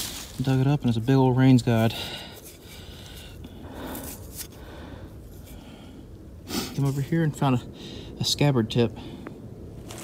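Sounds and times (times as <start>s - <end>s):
fingers scraping soil: 0.0s - 0.9s
steady background hiss: 0.0s - 10.0s.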